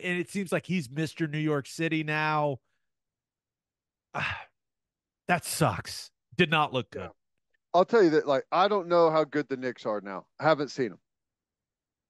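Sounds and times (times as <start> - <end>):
man sighing: 4.1 - 4.6.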